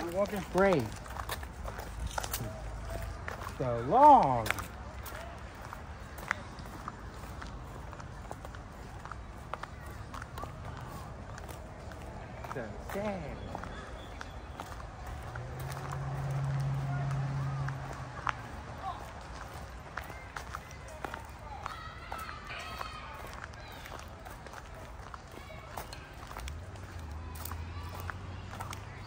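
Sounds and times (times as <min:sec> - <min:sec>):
faint voices: 0:00.0 - 0:29.0
footsteps and scuffing: 0:00.0 - 0:29.0.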